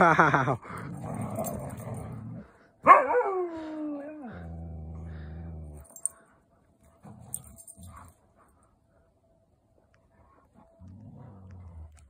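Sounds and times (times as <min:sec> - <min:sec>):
dog low grumble: 0:04.1 - 0:06.0.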